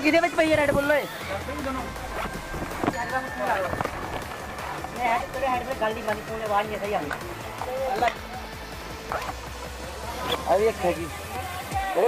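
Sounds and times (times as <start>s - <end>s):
man talking indistinctly: 0.1s - 2.4s, 9.9s - 12.0s.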